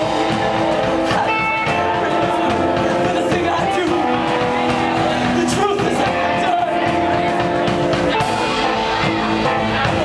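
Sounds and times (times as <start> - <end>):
live band playing: 0.0 - 10.0.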